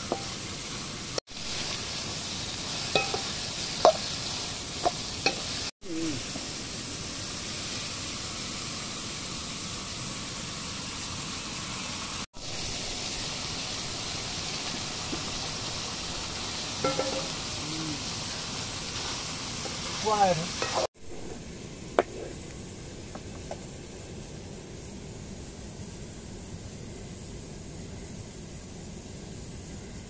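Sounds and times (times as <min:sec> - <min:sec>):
curry sizzling in a hot pan: 0:00.0 - 0:21.8.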